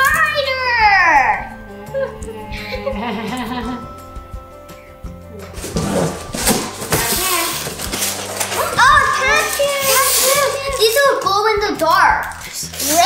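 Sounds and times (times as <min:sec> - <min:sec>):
children's excited voices: 0:00.0 - 0:01.6, 0:08.5 - 0:12.2
background music: 0:00.0 - 0:13.0
paper and cardboard rustling: 0:05.5 - 0:13.0.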